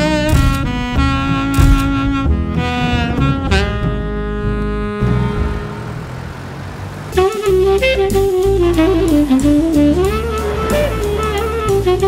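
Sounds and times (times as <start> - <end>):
jazz music: 0.0 - 12.0
low vehicle rumble: 0.0 - 12.0.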